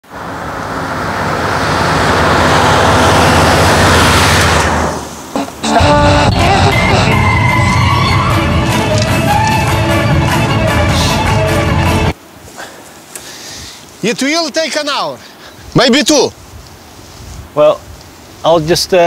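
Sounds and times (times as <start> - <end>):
car passing on road: 0.0 - 5.7.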